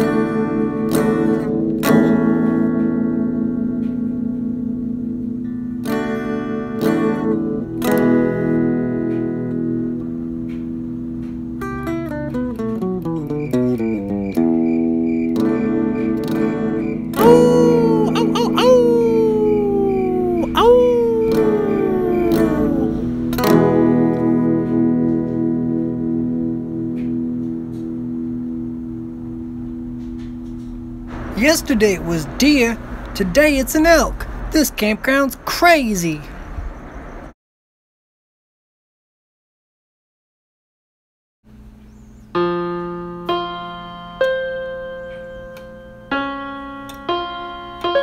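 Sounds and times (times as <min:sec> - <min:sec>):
slow piano music: 0:00.0 - 0:31.4, 0:42.3 - 0:48.0
guitar chord strummed: 0:00.0 - 0:34.2, 0:42.4 - 0:48.0.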